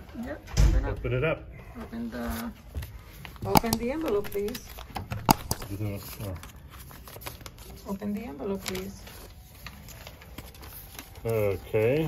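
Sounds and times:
paper rustling: 2.0s - 12.0s
envelope being opened: 2.3s - 12.0s.

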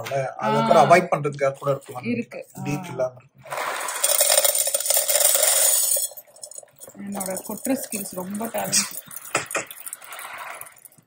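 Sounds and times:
snack pieces rattling into metal canister: 3.9s - 6.2s.

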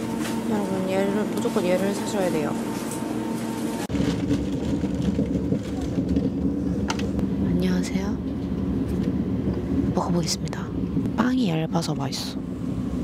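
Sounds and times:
train rumble from inside: 3.5s - 13.0s.

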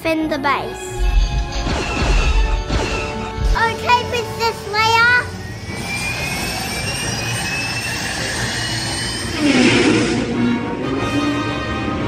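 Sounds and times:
orchestral film score: 0.0s - 12.0s
deep rumble: 0.9s - 3.6s.

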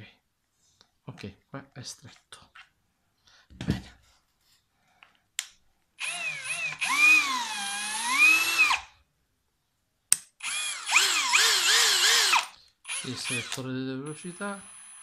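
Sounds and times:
cordless drill motor whine: 6.0s - 8.9s, 10.4s - 15.0s.

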